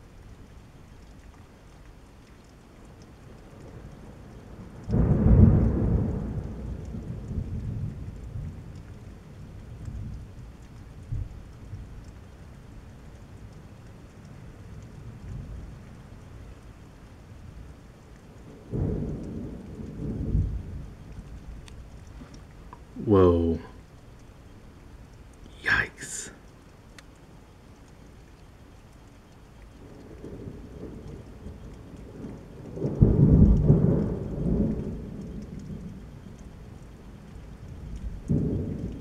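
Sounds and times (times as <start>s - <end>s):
steady rain falling: 0.0s - 39.0s
thunder rumbling: 4.6s - 8.7s, 18.4s - 21.7s, 29.8s - 39.0s.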